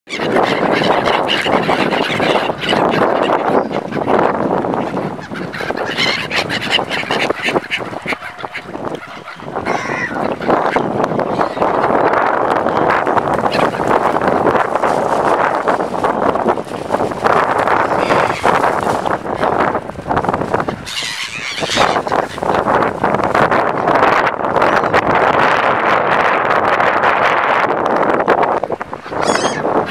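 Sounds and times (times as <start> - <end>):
gulls calling harshly: 0.1 - 25.8, 28.9 - 29.9
wind buffeting microphone: 0.1 - 29.9.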